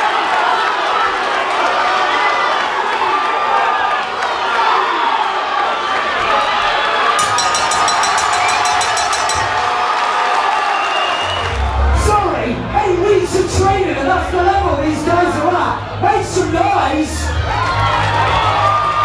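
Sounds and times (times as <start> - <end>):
crowd shouting and cheering: 0.0 - 19.0.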